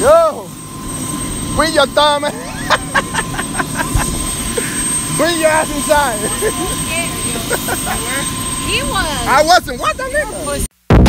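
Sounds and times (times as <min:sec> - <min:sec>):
helicopter turbine whine and rumble: 0:00.0 - 0:10.7
people talking: 0:04.6 - 0:10.7.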